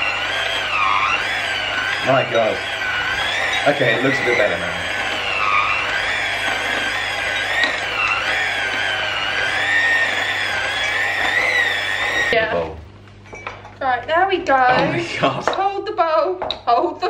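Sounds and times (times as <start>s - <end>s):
electric hand mixer whining: 0.0s - 13.4s, 14.1s - 16.6s.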